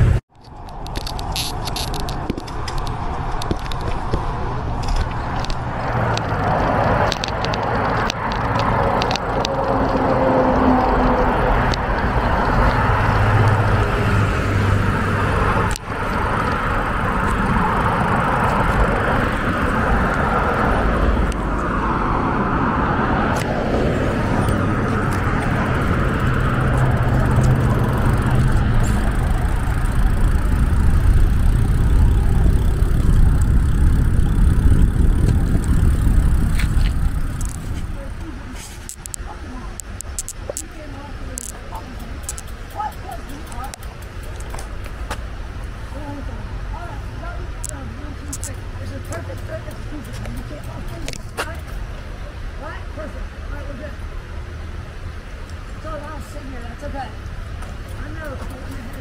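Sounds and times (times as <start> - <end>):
road traffic passing: 0.0 - 59.0.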